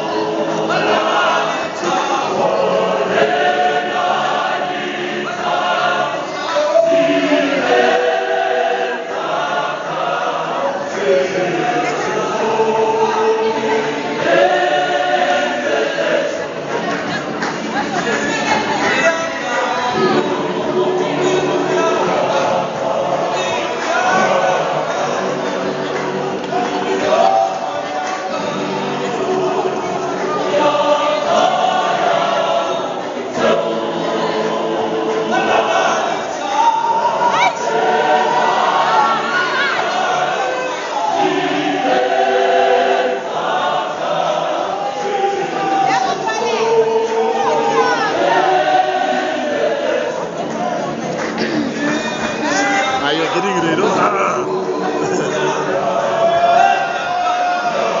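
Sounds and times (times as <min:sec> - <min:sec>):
choir singing a cappella: 0:00.0 - 0:58.0.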